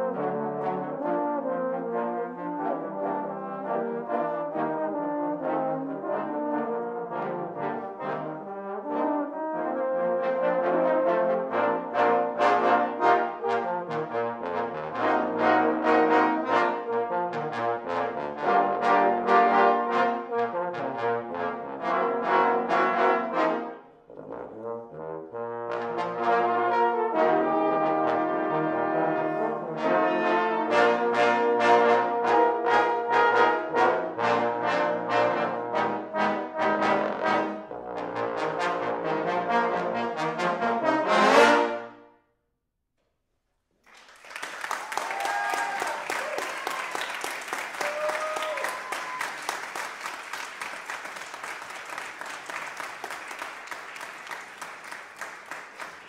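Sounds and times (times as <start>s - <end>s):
trombone choir playing: 0.0s - 42.0s.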